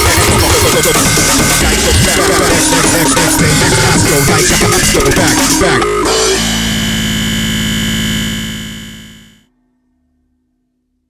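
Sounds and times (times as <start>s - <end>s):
noisy synthesizer drone: 0.0s - 9.5s.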